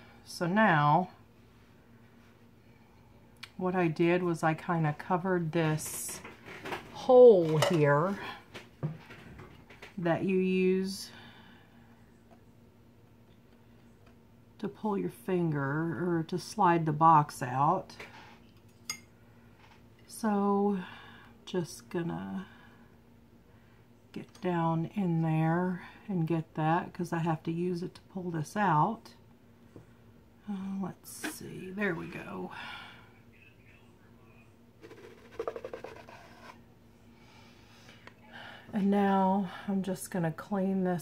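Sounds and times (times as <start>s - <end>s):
faint steady hum: 0.0s - 41.0s
wooden lid scraping in grooves: 34.8s - 36.6s.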